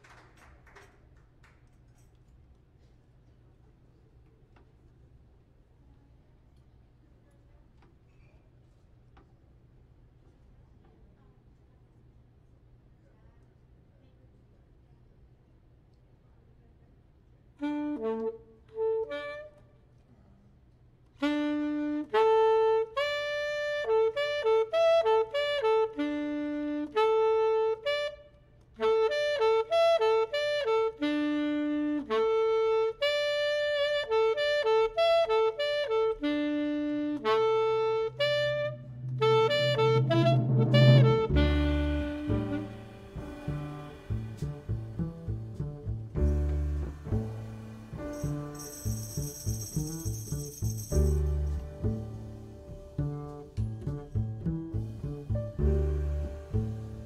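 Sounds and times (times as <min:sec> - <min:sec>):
jazz saxophone melody: 0:17.6 - 0:19.7, 0:21.2 - 0:57.0
double bass: 0:37.0 - 0:57.0
drums: 0:38.8 - 0:57.0
cymbal ringing: 0:46.6 - 0:52.6.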